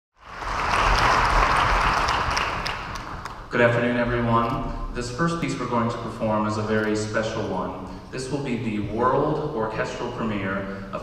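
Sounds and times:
audience applauding: 0.2 - 3.5.

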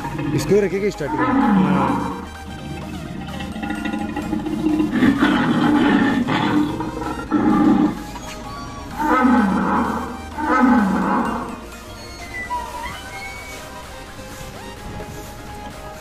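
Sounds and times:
dinosaur roars through loudspeaker: 0.0 - 2.2, 3.8 - 8.0, 9.0 - 11.5.

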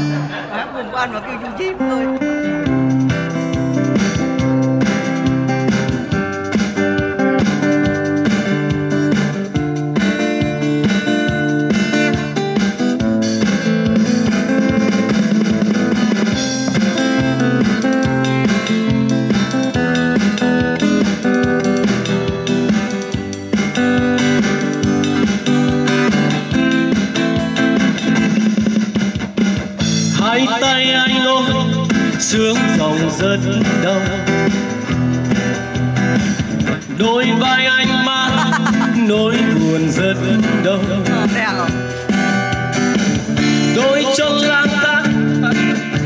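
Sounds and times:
acoustic guitar: 0.0 - 46.0
keyboard: 0.0 - 46.0
steady beat: 0.0 - 46.0.

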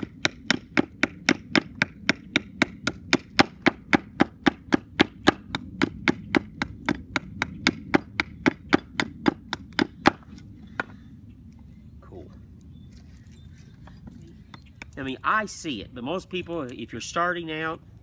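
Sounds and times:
hatchet chopping wood: 0.0 - 10.9.

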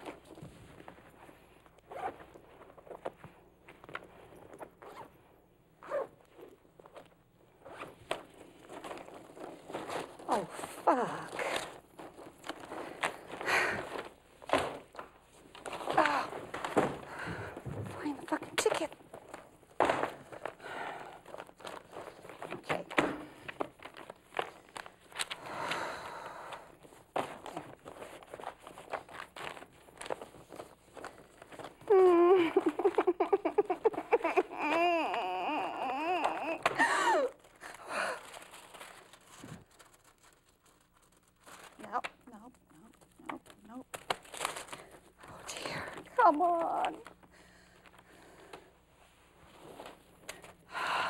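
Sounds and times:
papers rustling: 6.3 - 25.5, 26.5 - 35.2, 36.2 - 50.6
sobbing: 31.8 - 38.3
woman wailing: 31.9 - 37.4.

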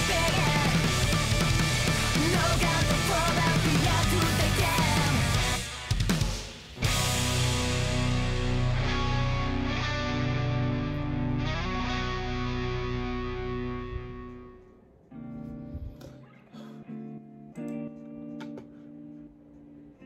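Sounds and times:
pulsing bass line: 0.0 - 5.8, 6.8 - 14.6
drums: 0.0 - 10.8
electric guitars: 0.0 - 20.0.

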